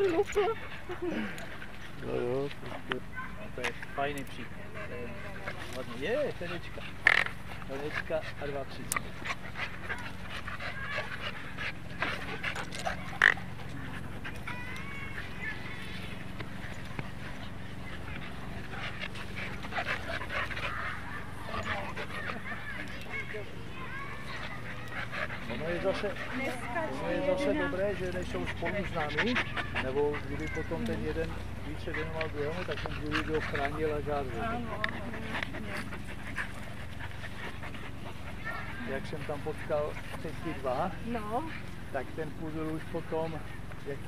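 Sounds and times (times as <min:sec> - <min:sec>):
dog panting: 0:00.0 - 0:44.0.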